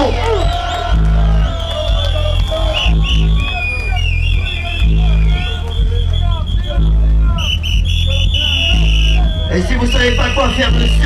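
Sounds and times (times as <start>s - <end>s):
heavy sub-bass line: 0.0s - 11.0s.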